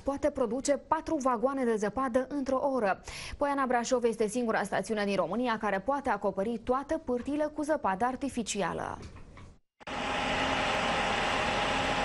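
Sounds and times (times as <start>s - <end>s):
snow cannon blasting air and spray: 9.9s - 12.0s.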